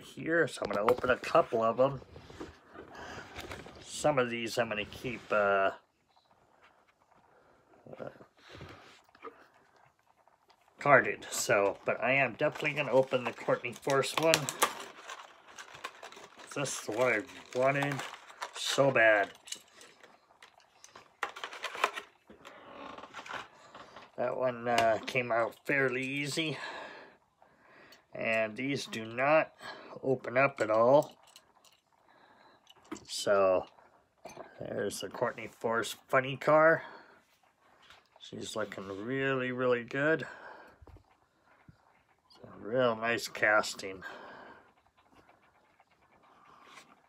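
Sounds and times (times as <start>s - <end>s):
soft plastic rustle: 0.4s - 26.6s
plastic packaging clicking and crackling: 10.5s - 26.0s.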